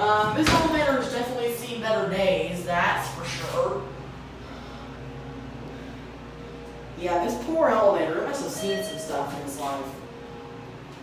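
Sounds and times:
elevator hum: 0.0s - 11.0s.

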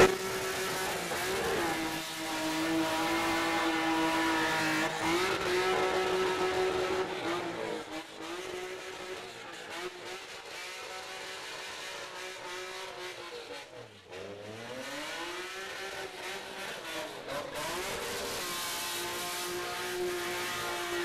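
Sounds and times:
car engine at high revs: 0.0s - 21.0s.

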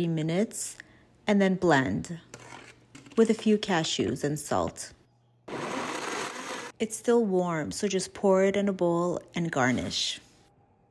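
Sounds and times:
blender whirring: 5.5s - 6.8s.

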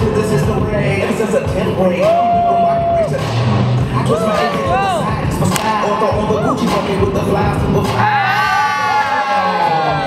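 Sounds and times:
spectators cheering: 8.0s - 10.0s.

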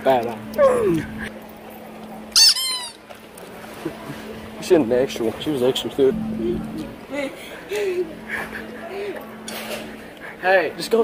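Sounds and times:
low steady hum: 0.0s - 10.8s.

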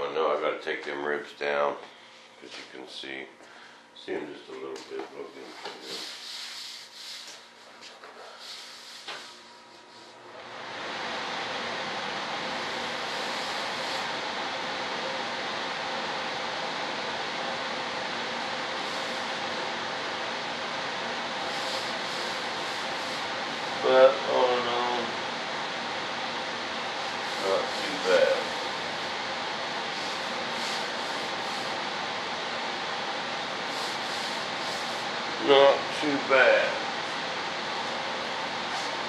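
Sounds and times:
electric sander running: 26.7s - 31.9s.

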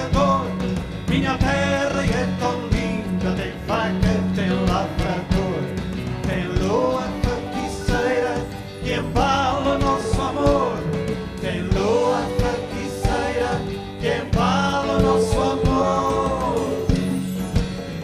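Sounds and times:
live folk-rock band playing: 0.0s - 18.0s.

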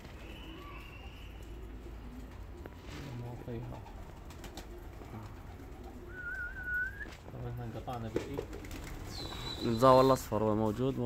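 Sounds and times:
pigeons cooing: 0.0s - 7.2s, 8.4s - 10.3s
man whistling high: 6.1s - 7.1s.

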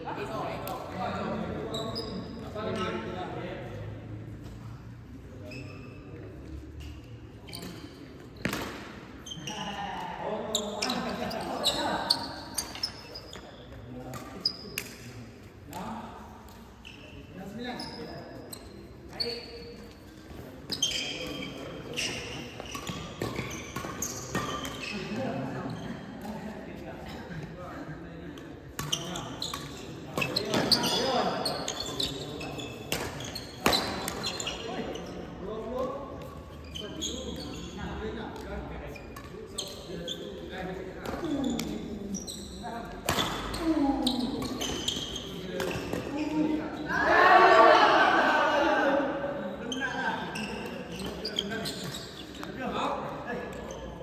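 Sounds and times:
shoes squeaking on court floor: 0.2s - 3.2s, 4.3s - 26.4s, 28.4s - 47.6s, 49.5s - 54.0s.

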